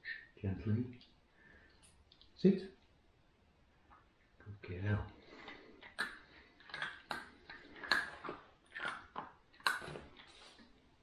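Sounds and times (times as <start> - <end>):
puppy chewing treats crunching: 5.2 - 10.7.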